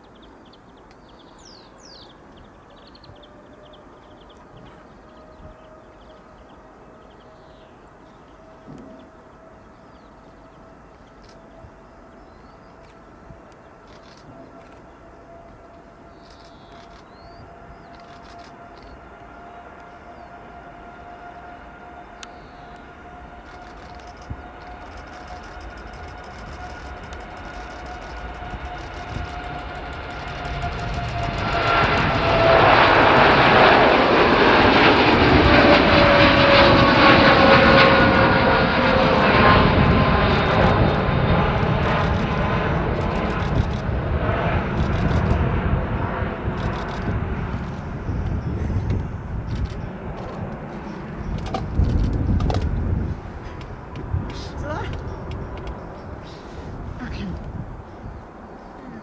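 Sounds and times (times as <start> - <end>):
jet engine roar with crackle: 0.0 - 59.0
jet engine whine: 0.0 - 59.0.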